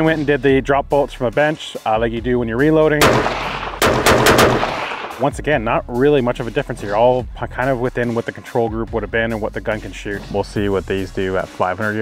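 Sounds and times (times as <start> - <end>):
rifle shots with ringing echo: 3.0 - 5.4.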